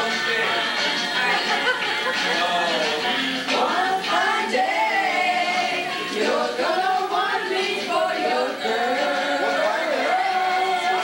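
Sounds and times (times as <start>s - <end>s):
group singing along: 0.0s - 11.0s
woman singing into microphone: 3.5s - 11.0s.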